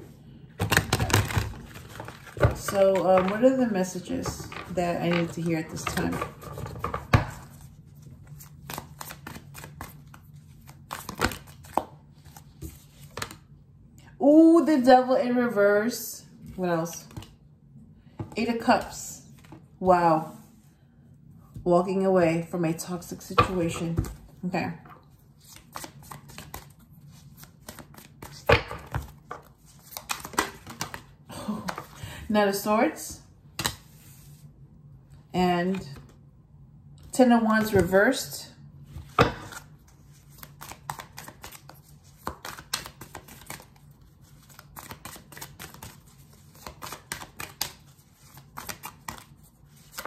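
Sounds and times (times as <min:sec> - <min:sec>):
cards being shuffled: 0:00.6 - 0:13.4, 0:25.3 - 0:32.0, 0:38.9 - 0:50.0.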